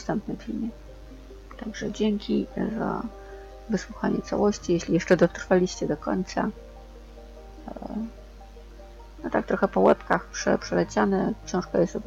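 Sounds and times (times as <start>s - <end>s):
faint background music: 0.0s - 12.0s
steady low hum: 0.0s - 12.0s.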